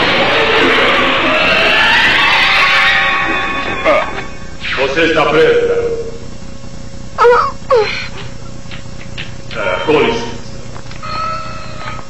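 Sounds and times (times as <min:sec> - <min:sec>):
slow rising tone: 0:00.0 - 0:04.6
dramatic cartoon music: 0:00.0 - 0:04.9.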